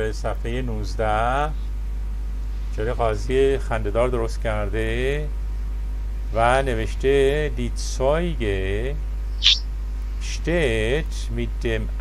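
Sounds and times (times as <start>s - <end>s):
steady low hum: 0.0s - 12.0s
brief hiss: 9.4s - 9.6s.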